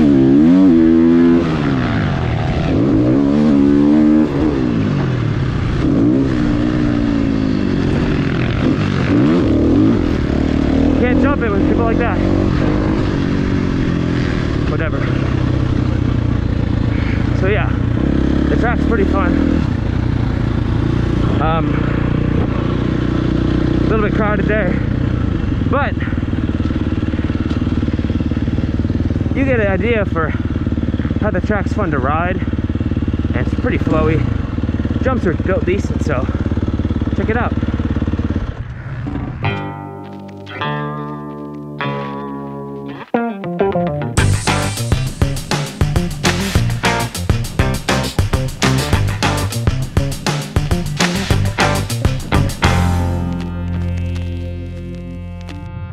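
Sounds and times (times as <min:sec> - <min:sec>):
dirt bike engine running: 0:00.0 - 0:42.9, 0:44.2 - 0:55.9
guitar music: 0:39.4 - 0:55.9.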